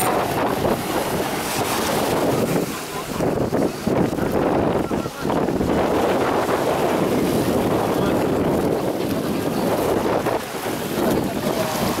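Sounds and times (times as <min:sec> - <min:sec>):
small waves washing around legs: 0:00.0 - 0:12.0
wind buffeting microphone: 0:00.0 - 0:12.0.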